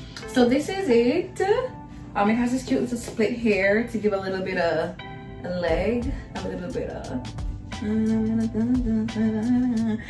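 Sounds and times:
background music: 0:00.0 - 0:10.0
woman humming: 0:07.8 - 0:10.0.

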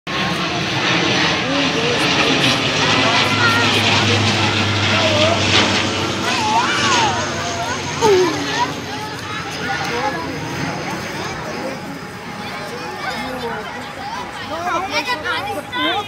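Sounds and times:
loud mechanical drone: 0:00.1 - 0:14.1
children calling and chattering: 0:00.1 - 0:16.0.

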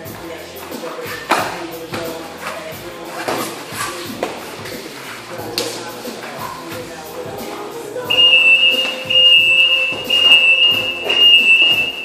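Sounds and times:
high-pitched electronic beeping: 0:08.1 - 0:12.0.

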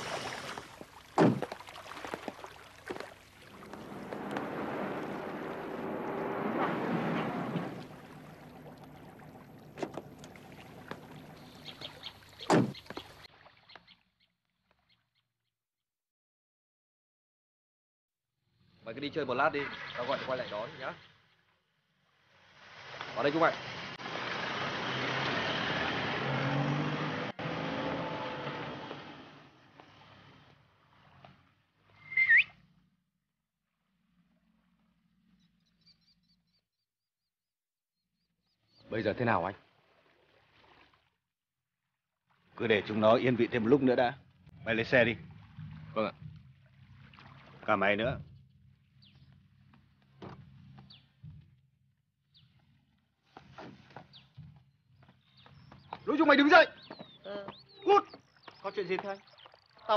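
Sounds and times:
short high whistle: 0:32.0 - 0:32.6.

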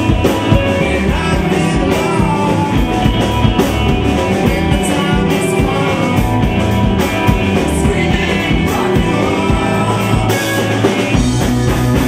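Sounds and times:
bass guitar: 0:00.0 - 0:12.0
drum kit steady beat: 0:00.0 - 0:12.0
electric guitars: 0:00.0 - 0:12.0
man singing lead vocals: 0:00.0 - 0:12.0.

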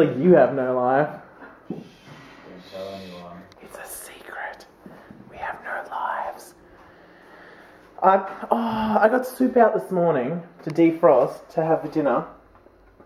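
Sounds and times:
soft speech: 0:02.6 - 0:04.6
person whispering: 0:02.6 - 0:04.7, 0:05.3 - 0:06.6.

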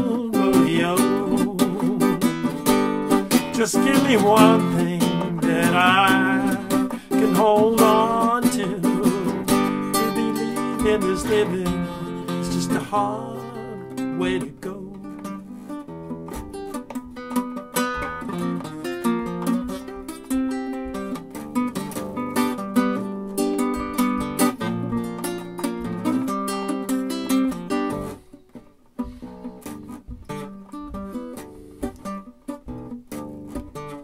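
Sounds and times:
solo acoustic guitar: 0:00.0 - 0:34.0.

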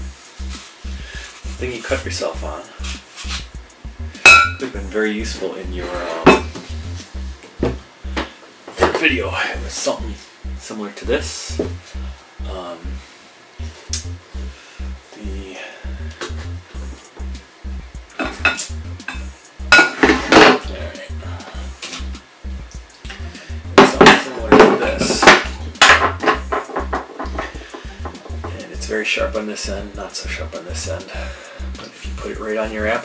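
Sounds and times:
background music with steady beat: 0:00.0 - 0:33.0.

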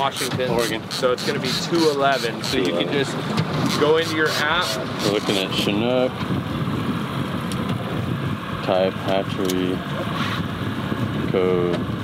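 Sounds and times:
boat motor idling: 0:00.0 - 0:12.0
water noise: 0:00.0 - 0:12.0
wind: 0:00.0 - 0:12.0.

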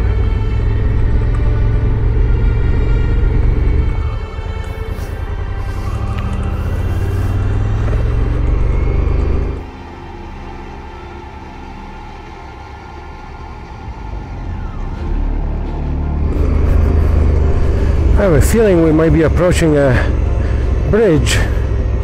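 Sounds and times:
motorcycle engine: 0:00.0 - 0:22.0.

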